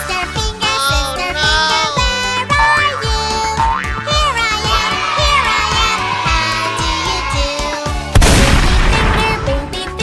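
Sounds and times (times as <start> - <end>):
children's backing music with beat: 0.0 - 10.0.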